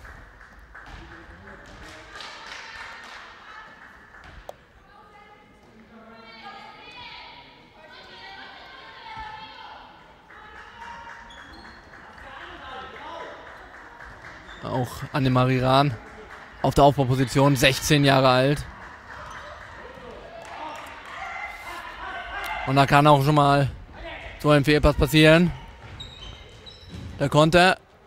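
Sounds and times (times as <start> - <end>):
players calling out: 14.4 - 27.7.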